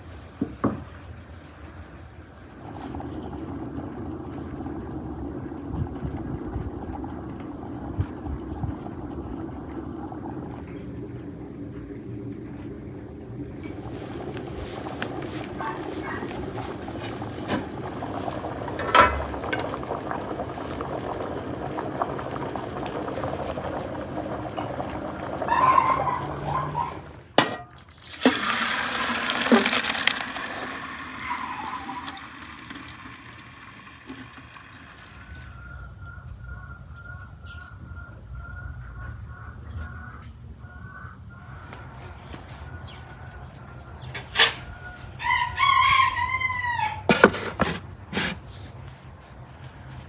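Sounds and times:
water pouring into metal colander: 13.6 - 35.8.

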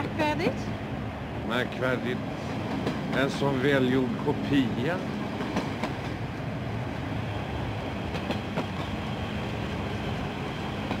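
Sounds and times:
train running rumble: 0.0 - 11.0.

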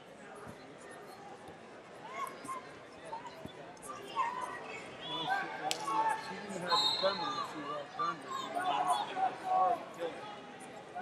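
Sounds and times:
people talking in echoing hall: 0.0 - 11.0.

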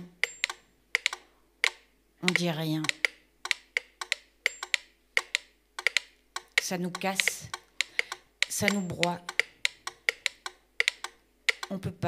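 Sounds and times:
mechanical metronomes ticking: 0.0 - 12.0.

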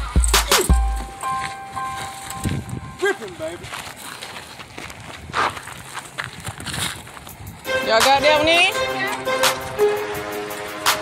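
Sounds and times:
rustling noise: 1.0 - 7.6.

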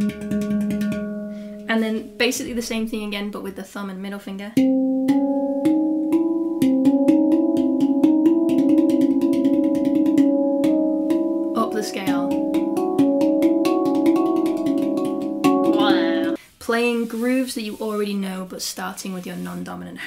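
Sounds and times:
handpan notes: 0.0 - 3.0, 4.6 - 16.4.

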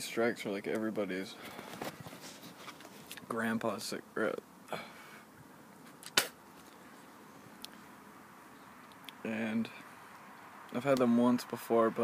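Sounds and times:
sharp click: 6.0 - 6.4.

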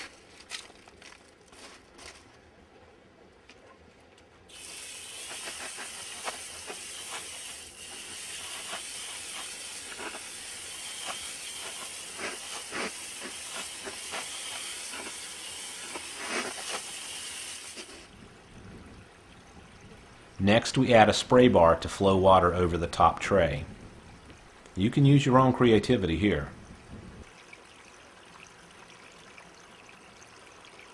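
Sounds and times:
hose nozzle spraying water: 4.5 - 18.1.

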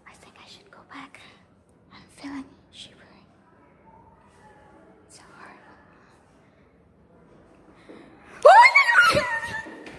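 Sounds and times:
person whispering: 0.0 - 3.5, 4.4 - 6.4.

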